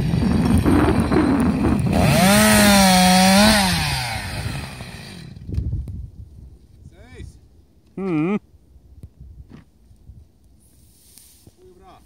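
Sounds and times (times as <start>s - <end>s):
chainsaw running at full throttle: 0.0s - 5.5s.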